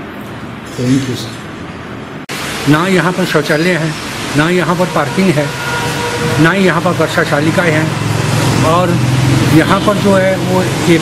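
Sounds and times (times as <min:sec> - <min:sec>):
recording hiss: 0:00.0 - 0:11.0
men speaking: 0:00.7 - 0:01.5, 0:02.5 - 0:11.0.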